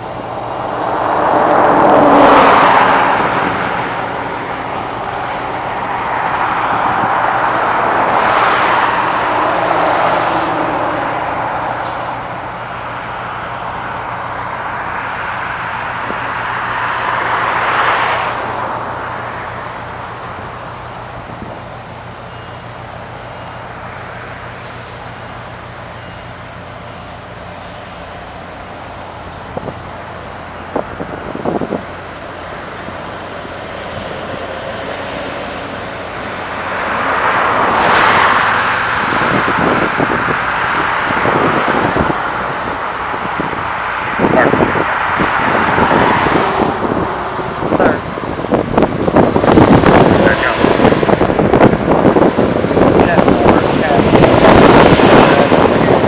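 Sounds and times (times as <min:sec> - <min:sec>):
traffic noise: 0:00.0 - 0:56.0
truck diesel engine running: 0:18.4 - 0:56.0.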